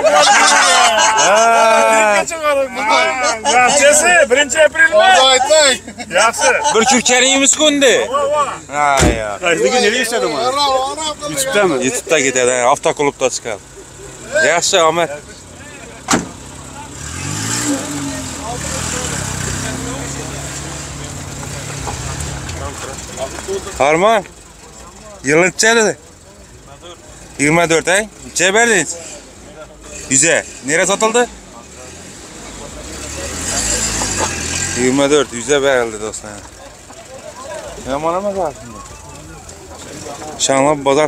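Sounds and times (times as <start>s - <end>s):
car engine revving: 1.8s - 36.7s
car driving past: 15.6s - 24.0s, 28.8s - 36.4s
sharp knock: 16.1s - 16.4s.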